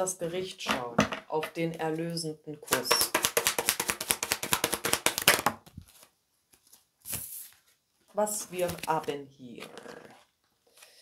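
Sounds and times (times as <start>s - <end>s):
card deck being shuffled: 2.7s - 7.7s, 8.5s - 10.2s.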